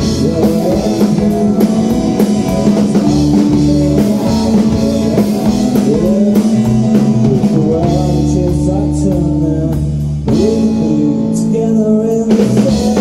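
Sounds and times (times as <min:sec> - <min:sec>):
drum kit beat: 0:00.0 - 0:13.0
electric guitars: 0:00.0 - 0:13.0.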